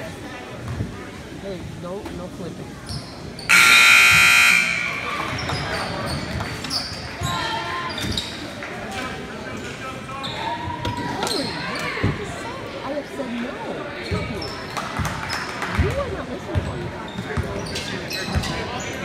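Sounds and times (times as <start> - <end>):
crowd chatter: 0.0 - 19.0
sneaker squeaks: 2.8 - 8.4, 16.6 - 18.9.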